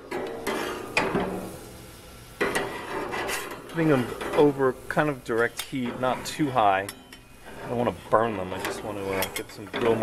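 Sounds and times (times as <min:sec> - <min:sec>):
metal spatula clacking on grate: 0:00.0 - 0:01.4, 0:05.4 - 0:07.3, 0:08.5 - 0:10.0.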